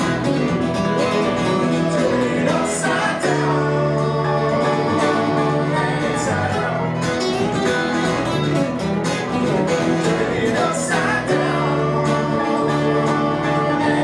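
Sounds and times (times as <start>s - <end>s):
acoustic guitars: 0.0s - 14.0s
electric bass: 0.0s - 14.0s
keyboard playing: 0.0s - 14.0s.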